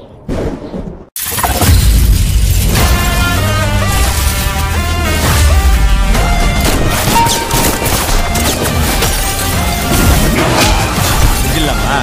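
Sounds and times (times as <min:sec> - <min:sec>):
trailer music with deep bass: 0:01.2 - 0:12.0
glass shattering: 0:06.6 - 0:11.7.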